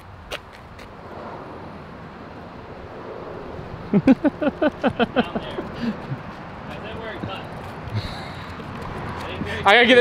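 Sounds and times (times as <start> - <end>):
outdoor background noise: 0.0 - 10.0
loud laughter: 3.9 - 6.2.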